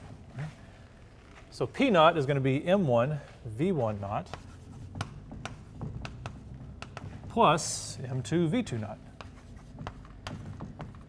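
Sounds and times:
chalk writing on blackboard: 3.6 - 11.0.

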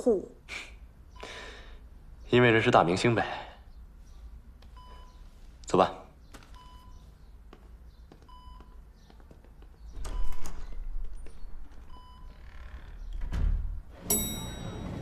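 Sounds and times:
patient monitor beeping: 4.7 - 5.3, 6.5 - 7.2, 8.1 - 8.9, 11.8 - 12.7.

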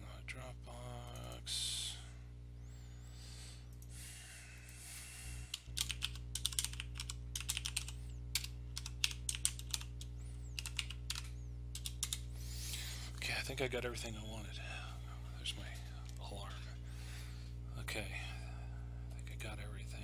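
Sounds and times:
low electrical hum: 0.0 - 20.0
typing on keyboard: 5.5 - 12.2.

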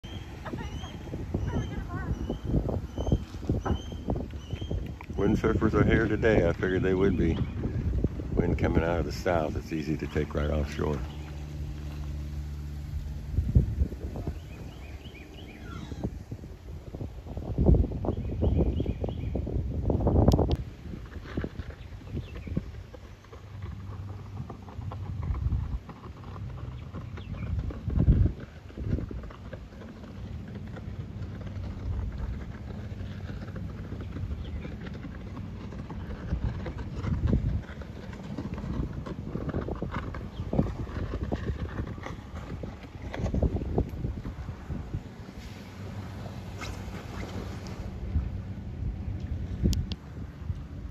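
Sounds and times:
wind gusts on microphone: 0.0 - 50.9.

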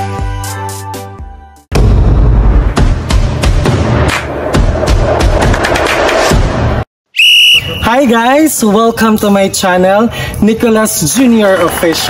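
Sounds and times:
high whistle tone: 7.1 - 8.1.

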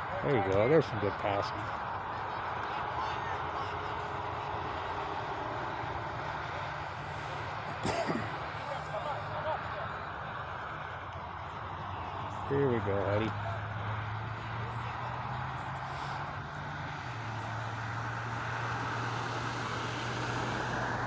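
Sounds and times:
faint distant voices: 0.0 - 21.0
outdoor background noise: 0.0 - 21.0.

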